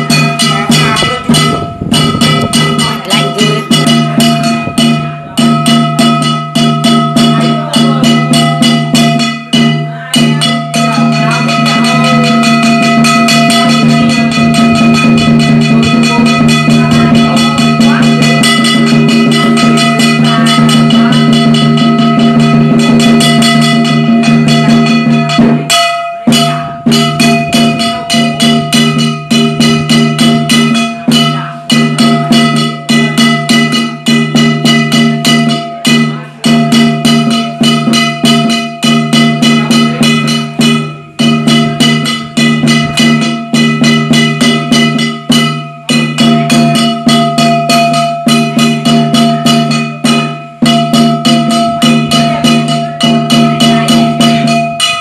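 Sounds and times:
drum beaten rapidly: 0.0 - 55.0
small cymbals ringing: 0.0 - 55.0.

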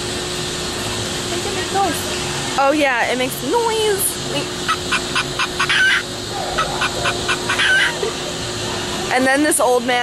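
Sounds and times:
toy chicken clucking: 4.7 - 6.0, 6.6 - 8.0
short rising squawk: 4.7 - 8.1.

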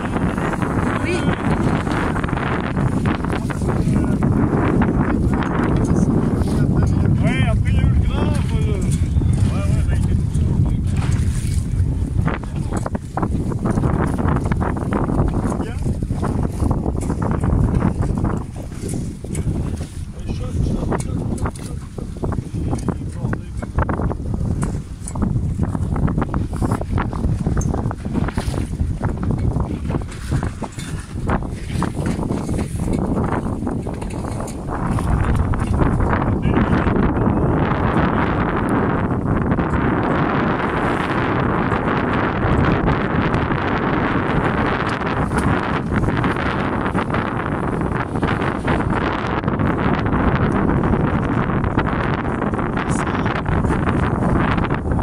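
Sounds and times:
knocks and splashes: 0.0 - 37.0, 42.4 - 55.0
water washing: 0.0 - 55.0
wind buffeting microphone: 0.0 - 55.0.

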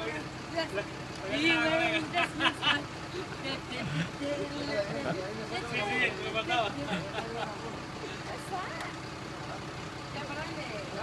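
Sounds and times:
lorry engine running: 0.0 - 11.0.

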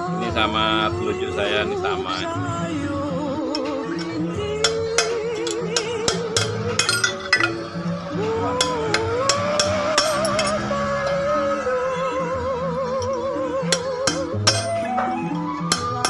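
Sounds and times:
music with singing voice: 0.0 - 16.0
metal clinks and taps: 4.7 - 7.8.

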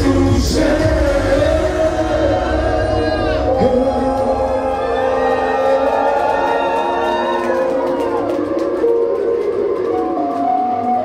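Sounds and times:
backing track over loudspeakers: 0.0 - 11.0.

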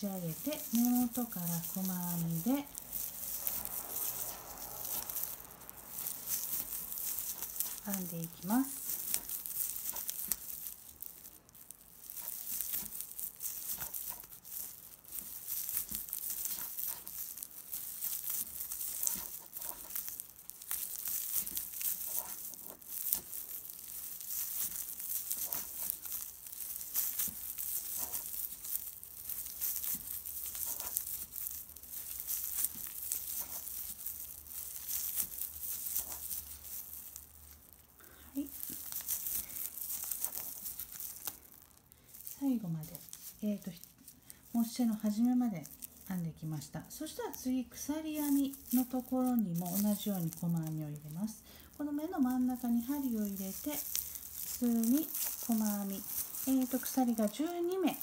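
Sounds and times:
crinkly rustling of tape yarn: 0.0 - 58.0.

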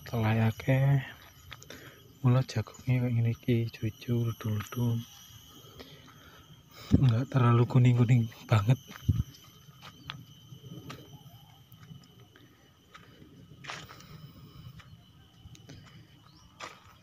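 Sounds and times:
faint high-pitched tone: 0.0 - 17.0
light footsteps on soil: 12.9 - 17.0.

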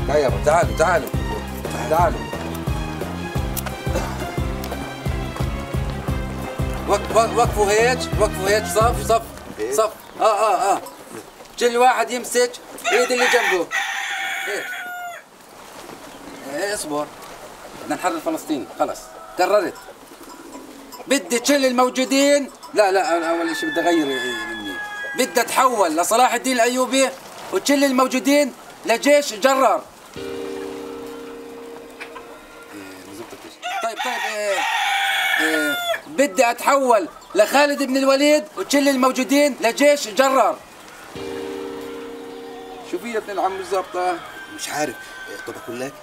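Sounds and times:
chickens clucking: 7.8 - 11.6, 16.0 - 26.2, 29.9 - 46.0
rooster crowing: 12.8 - 15.3, 23.0 - 25.7, 32.0 - 36.1, 41.9 - 46.0.

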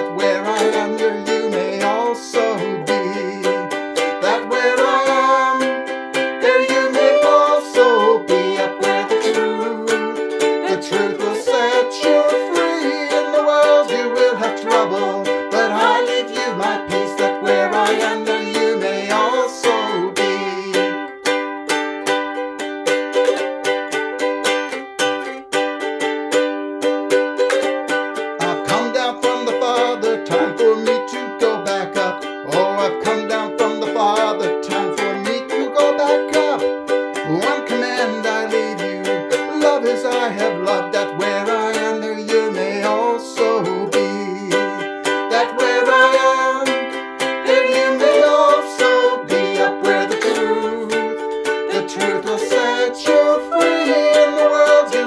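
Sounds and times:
man and woman singing: 0.0 - 21.1, 28.3 - 55.0
ukulele strumming: 0.0 - 55.0.

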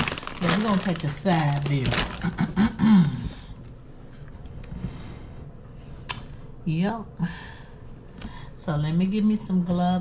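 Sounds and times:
woman clearing her throat: 2.2 - 3.2.

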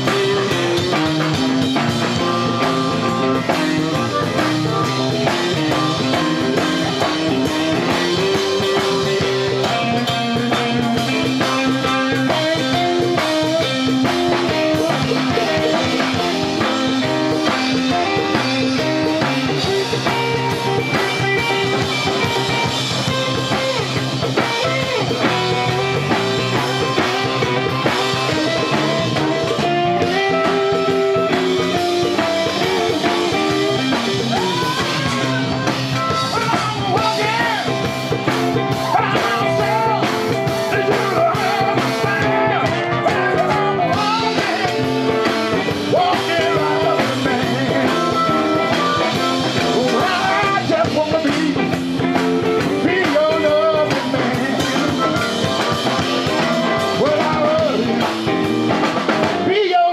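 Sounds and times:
bass guitar: 0.0 - 59.9
drum kit beat: 0.0 - 59.9
electric guitar lead notes: 0.0 - 59.9
live rock band playing: 0.0 - 59.9.

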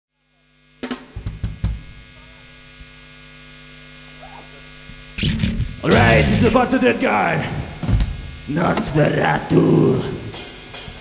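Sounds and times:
stage amplifier hum: 0.1 - 11.0
drum kit hits: 5.2 - 6.7
band playing: 5.2 - 7.8
man's voice: 5.8 - 7.8, 8.5 - 10.4.

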